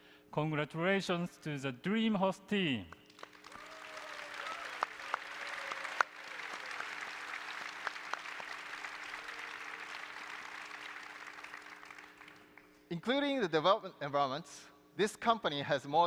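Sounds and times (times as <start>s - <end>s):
audience applauding: 3.1s - 12.7s.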